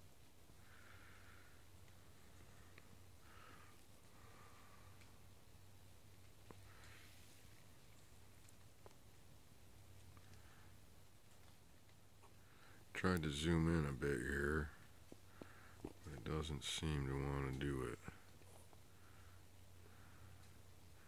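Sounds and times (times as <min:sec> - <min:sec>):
faint background hiss: 0:00.0 - 0:21.0
low steady hum: 0:00.0 - 0:21.0
faint clicks: 0:00.5 - 0:05.2, 0:06.2 - 0:13.3, 0:14.6 - 0:16.2, 0:17.4 - 0:21.0.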